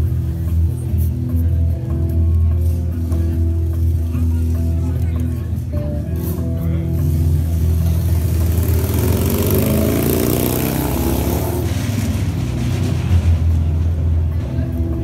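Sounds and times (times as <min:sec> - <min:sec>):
live music with bass line: 0:00.0 - 0:15.0
vehicle engine passing: 0:07.8 - 0:14.6.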